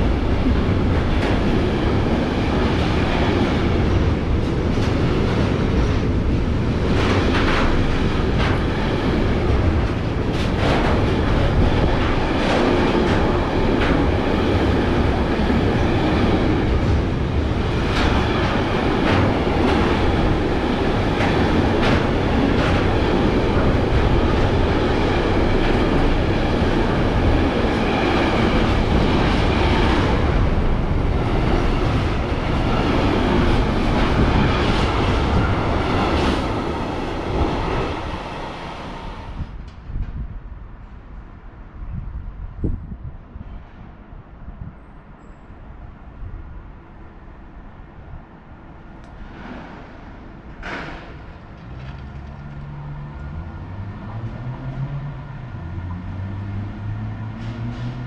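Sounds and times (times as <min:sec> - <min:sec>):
wheels clacking over rail joints: 0:00.0 - 0:38.1
train wheels rumbling on rail: 0:00.0 - 0:58.0.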